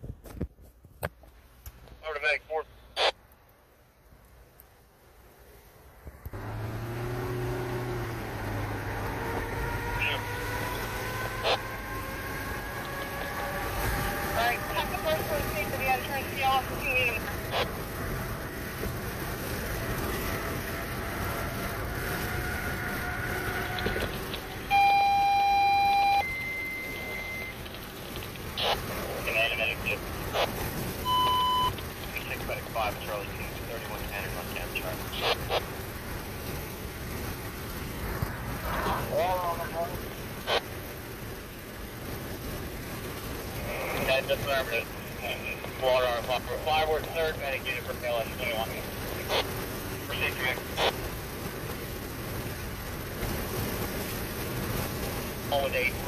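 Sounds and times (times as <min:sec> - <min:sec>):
road noise inside car: 0:00.0 - 0:56.0
garbled radio transmissions: 0:01.9 - 0:03.2, 0:09.7 - 0:12.1, 0:12.7 - 0:17.9, 0:22.8 - 0:25.1, 0:25.7 - 0:35.8, 0:38.6 - 0:40.8, 0:43.5 - 0:51.1, 0:55.4 - 0:56.0
short beep: 0:24.7 - 0:27.6, 0:31.0 - 0:31.8
two-tone alert: 0:24.7 - 0:27.6, 0:31.1 - 0:31.8.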